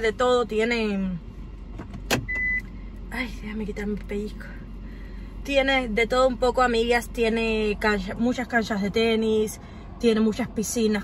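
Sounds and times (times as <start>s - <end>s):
low steady hum: 0.0s - 11.0s
sharp click in car: 1.7s - 2.7s.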